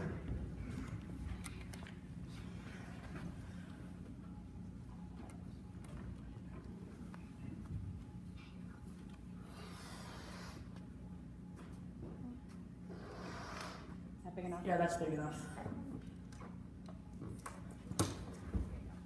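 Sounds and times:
breathy hiss: 9.4s - 10.8s, 12.9s - 14.0s.

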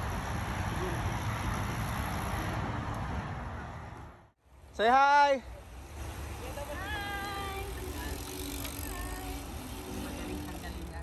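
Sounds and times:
wind and tyres rumbling: 0.0s - 4.7s, 5.6s - 11.0s.

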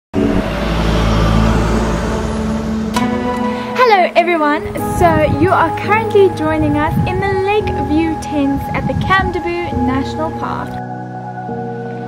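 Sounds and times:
engine droning: 0.1s - 10.6s.

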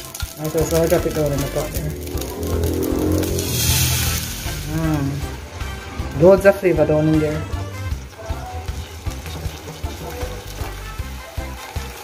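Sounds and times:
sauce sizzling in hot oil: 0.0s - 12.0s
music with steady beat: 1.0s - 12.0s.

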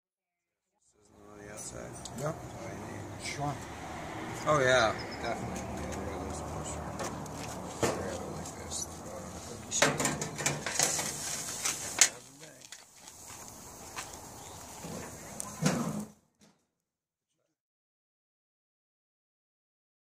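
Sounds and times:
metal tongs clanking on grill grates: 9.7s - 12.8s.

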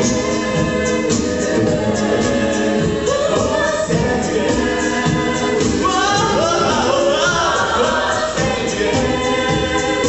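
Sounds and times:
a cappella group singing: 0.0s - 10.0s.

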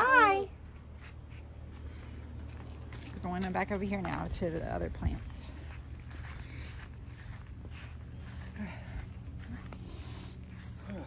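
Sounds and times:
steady low rumble: 0.5s - 11.0s
footsteps on grass: 0.8s - 11.0s.

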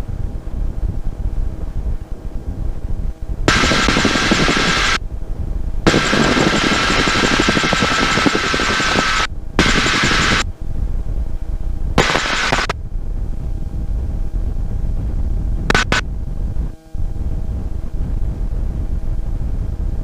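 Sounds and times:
helicopter engine and rotor: 1.2s - 14.5s, 15.6s - 18.5s
headset intercom rushing noise: 3.5s - 5.0s, 5.9s - 10.5s, 12.0s - 12.8s, 15.7s - 16.0s.

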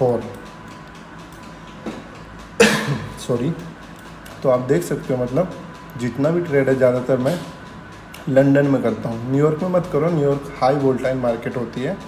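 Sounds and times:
faint background hum: 0.0s - 12.0s
man coughing: 2.6s - 3.1s.

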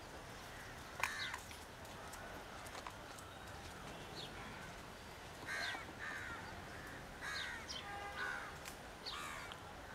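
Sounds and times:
faint background noise: 0.0s - 9.9s
birds calling: 0.5s - 1.5s, 3.1s - 9.6s.

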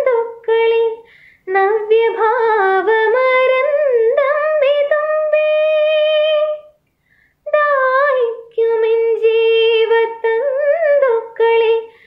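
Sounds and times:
woman singing unaccompanied: 0.0s - 6.8s, 7.5s - 12.0s
woman breathing: 1.0s - 1.5s, 6.9s - 7.4s.

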